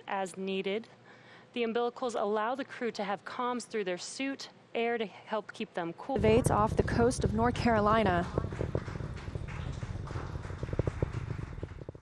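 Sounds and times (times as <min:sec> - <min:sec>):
rocket engine rumble and crackling: 0:06.2 - 0:12.0.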